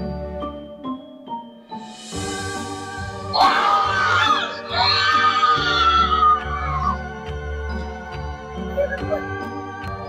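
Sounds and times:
background music: 0.0 - 10.0
person screaming in fright: 3.4 - 6.8.

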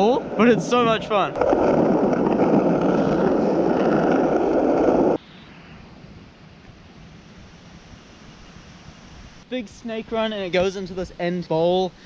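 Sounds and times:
skateboard wheels rolling on asphalt: 0.0 - 5.2
faint background hiss: 5.2 - 12.0.

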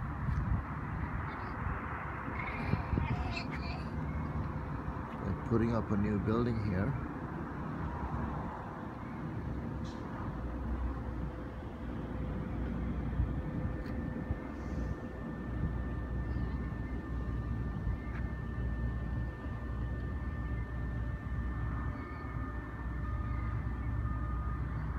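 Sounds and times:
faint whining tones: 0.0 - 24.9
low rumble of distant engines: 0.0 - 24.9.

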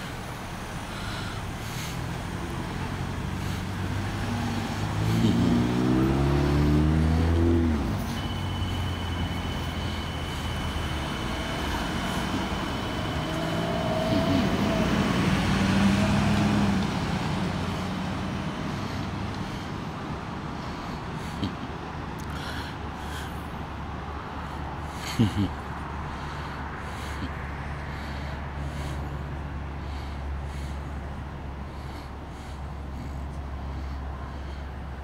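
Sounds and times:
vehicle engine passing: 0.0 - 35.0
steady high whine: 7.1 - 21.1.

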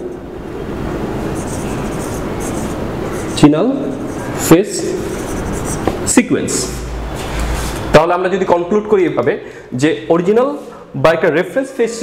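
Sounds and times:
steady background hiss: 0.0 - 12.0
marker pen writing on whiteboard: 1.2 - 7.9.

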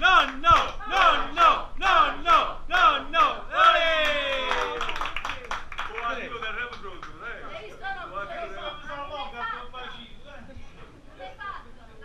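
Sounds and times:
voices chanting rhythmically: 0.0 - 4.6.

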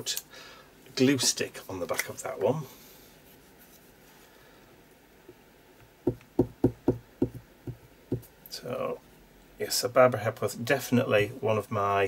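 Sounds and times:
hand tool knocking on desk: 6.0 - 8.3.

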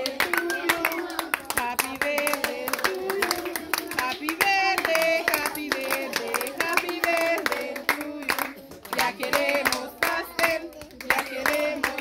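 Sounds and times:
group singing: 0.0 - 12.0
people clapping in rhythm: 0.0 - 12.0.

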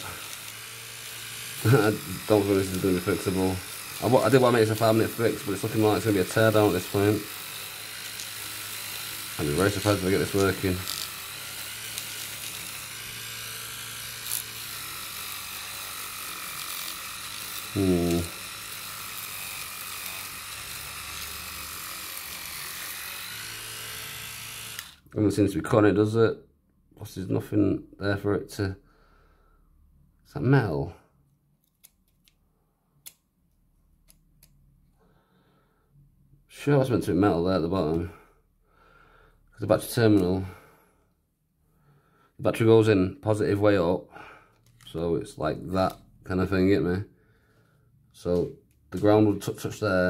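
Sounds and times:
electric toothbrush buzzing: 0.0 - 25.0.

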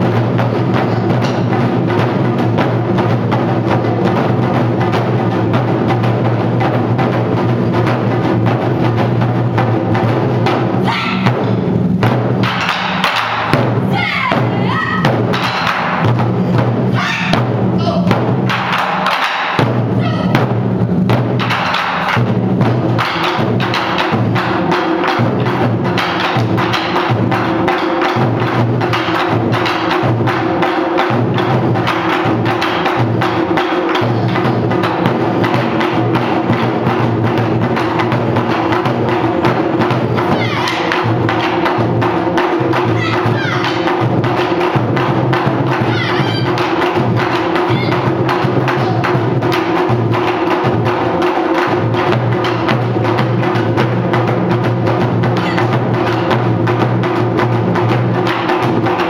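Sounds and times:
taiko drums playing: 0.0 - 59.0.

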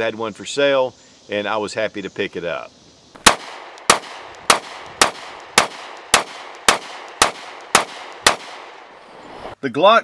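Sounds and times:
pistol shots: 3.2 - 9.0.

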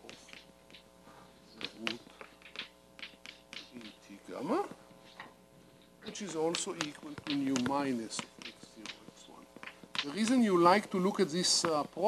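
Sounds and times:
chalk tapping and scraping on blackboard: 0.0 - 0.9, 1.5 - 4.0, 6.1 - 10.4.

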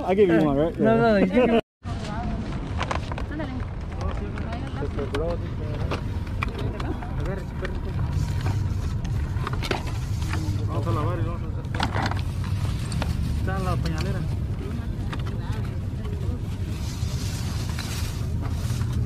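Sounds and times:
steady low rumble: 1.9 - 19.0.

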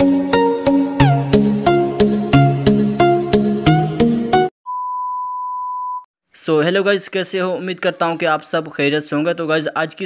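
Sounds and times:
high-pitched electronic beep: 4.7 - 6.1.

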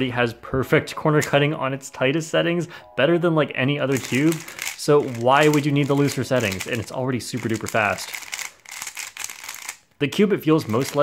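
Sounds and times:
puzzle cube clicking and rattling: 3.9 - 9.9, 10.6 - 11.0.

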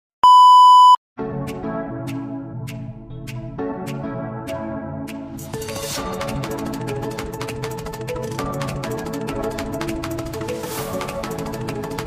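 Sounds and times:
steady electronic beep: 0.2 - 1.0
electronic music with a beat: 1.4 - 12.0.

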